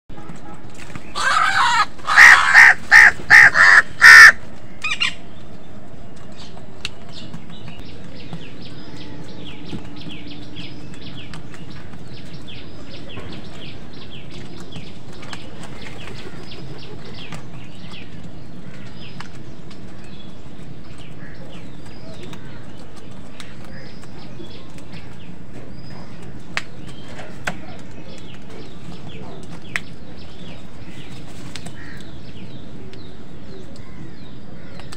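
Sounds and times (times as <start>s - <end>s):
birds chirping: 0.1s - 34.9s
crows cawing: 1.1s - 5.2s, 31.7s - 32.2s.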